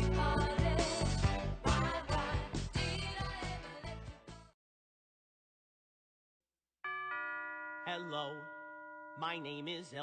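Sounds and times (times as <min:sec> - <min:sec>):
two-note doorbell chime: 0:06.8 - 0:10.0.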